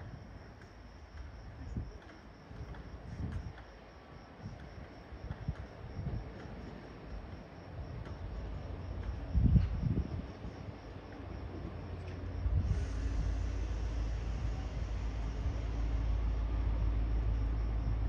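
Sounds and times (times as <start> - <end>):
crickets chirping: 0.0 - 18.0
low rumbles: 7.8 - 18.0.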